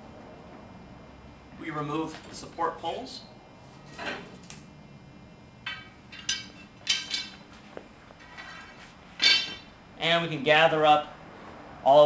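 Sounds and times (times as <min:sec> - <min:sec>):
metal poles clinking: 0:05.7 - 0:07.4, 0:08.2 - 0:09.7.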